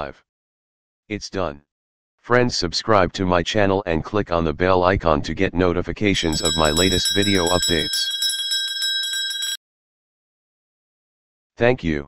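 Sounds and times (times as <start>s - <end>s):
small bell ringing rapidly: 6.2s - 9.6s.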